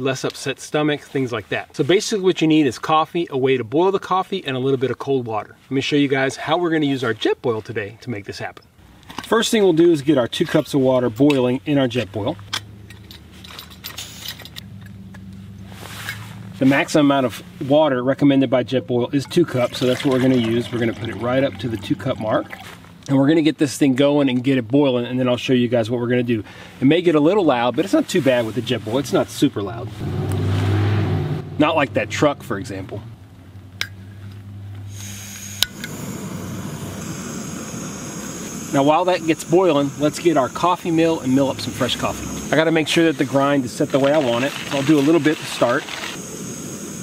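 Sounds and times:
truck engine hum: 12.1 - 23.2, 28.8 - 47.0
stove parts clicking and clinking: 12.4 - 15.3
steady low hum: 31.1 - 44.0
gas stove burner hissing: 34.8 - 47.0.

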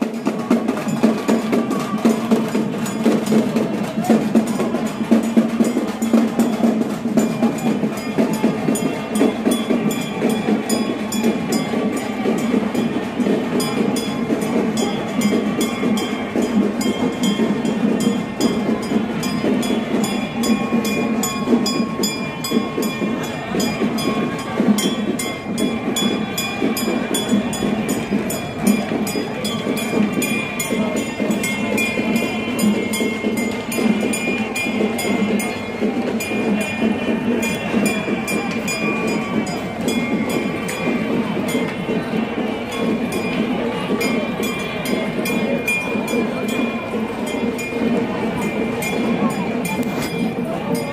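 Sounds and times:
crowd noise: 0.0 - 50.9
fast procession drumming: 0.0 - 50.9.

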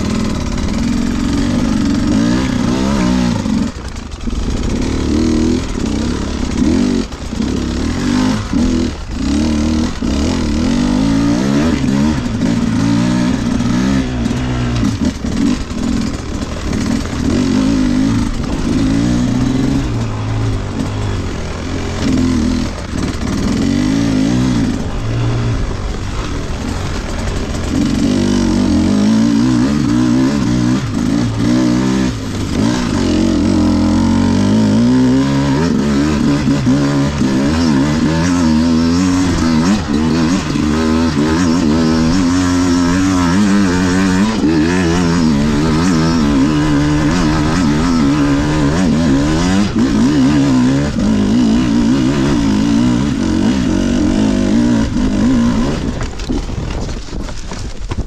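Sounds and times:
dirt bike engine revving: 0.0 - 57.7.

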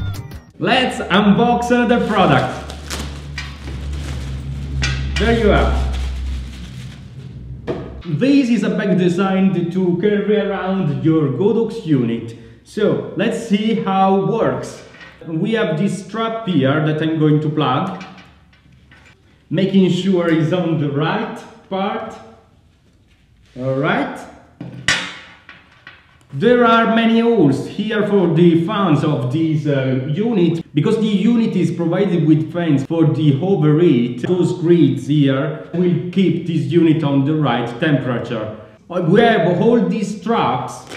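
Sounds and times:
low steady rumble: 0.8 - 10.0.

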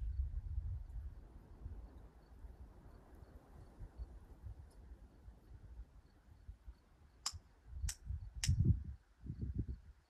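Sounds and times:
wind rumble on microphone: 0.0 - 6.8, 7.6 - 10.0
sharp clicks: 7.2 - 8.6.

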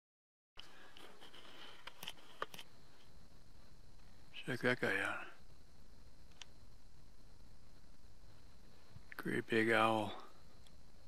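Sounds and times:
faint background hiss: 0.6 - 11.0
soft camera clicks: 1.7 - 2.7.

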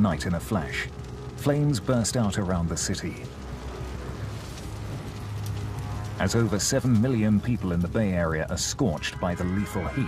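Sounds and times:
low rumbling drone: 0.0 - 8.3
flames crackling: 0.0 - 10.0.

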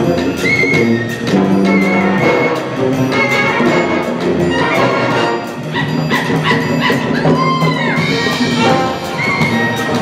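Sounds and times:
percussion strokes: 0.0 - 10.0
wind ensemble playing: 0.0 - 10.0.

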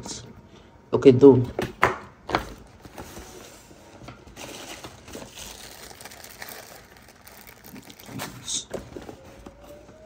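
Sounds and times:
plastic packaging rustling: 2.4 - 9.9.

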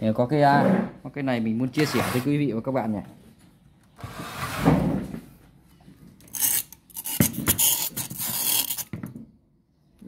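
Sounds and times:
handling rubbing and scraping: 6.2 - 9.0.

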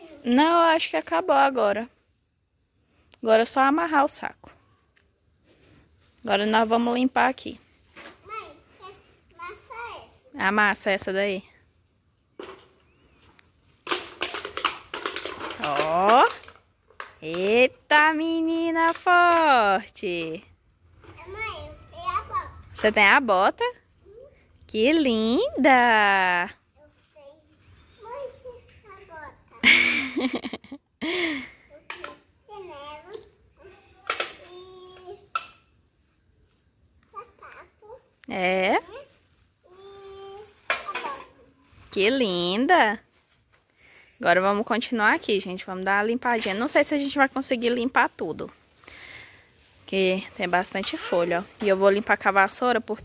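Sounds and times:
small child talking and babbling: 0.0 - 0.3, 8.2 - 10.4, 21.1 - 22.8, 24.0 - 24.5, 26.8 - 29.6, 31.6 - 35.4, 37.1 - 38.2, 38.8 - 41.7
drink can being crushed: 13.8 - 17.4.

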